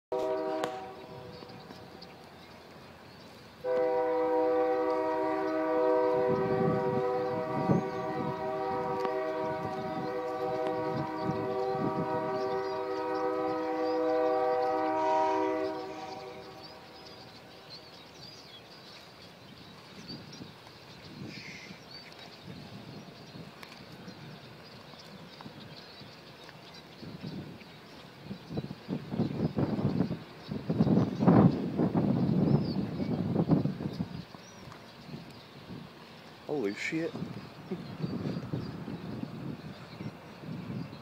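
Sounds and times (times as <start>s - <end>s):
horn blasting: 0.1s - 1.3s, 3.6s - 16.8s.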